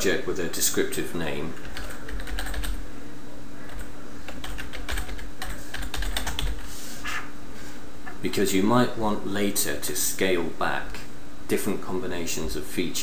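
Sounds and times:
computer keyboard typing: 1.6 - 2.8, 3.7 - 6.6.

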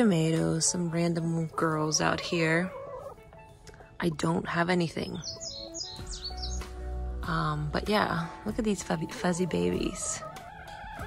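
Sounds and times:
background music sustained notes: 0.0 - 11.0
small bird chirping: 4.9 - 6.9.

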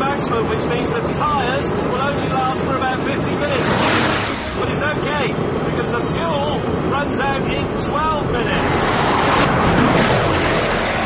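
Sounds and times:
car engine roaring past: 3.3 - 6.1, 8.2 - 11.0.

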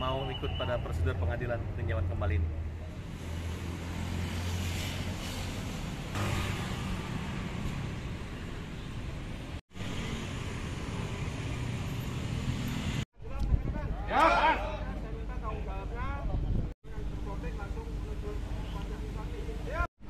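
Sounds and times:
road traffic hum: 0.0 - 19.9.

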